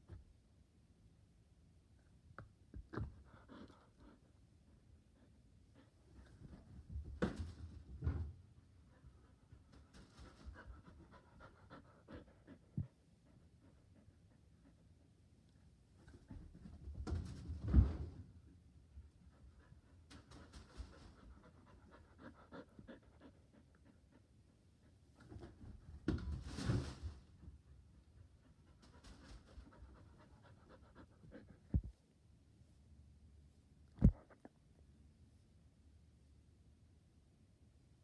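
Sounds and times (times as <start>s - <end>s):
dog panting: 3.0s - 6.8s, 8.9s - 15.2s, 19.2s - 25.4s, 27.7s - 32.0s.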